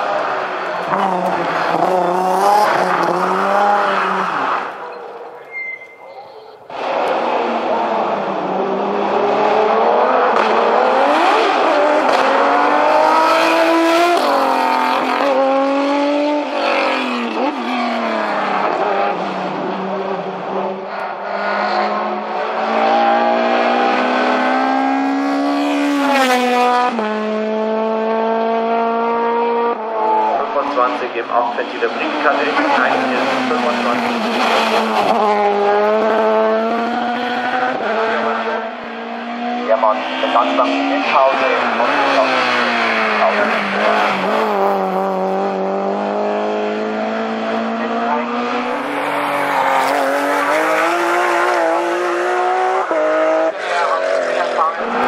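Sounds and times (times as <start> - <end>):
race car engines accelerating: 0.0 - 55.0.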